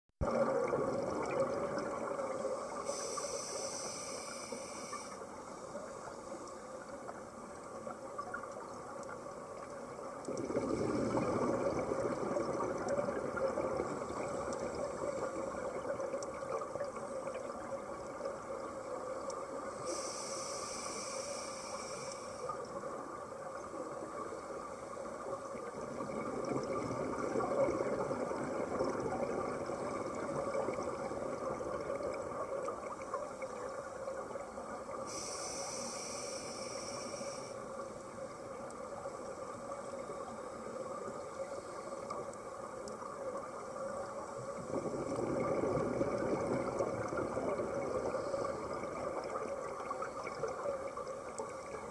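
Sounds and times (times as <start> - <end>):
scuba breathing bubbles: 0.2 - 5.2, 10.3 - 18.8, 23.6 - 33.8, 34.9 - 37.6, 44.3 - 51.9.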